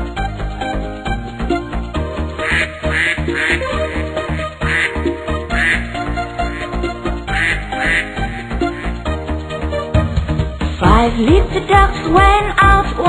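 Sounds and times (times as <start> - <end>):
bouncy children's backing music: 0.0 - 13.0.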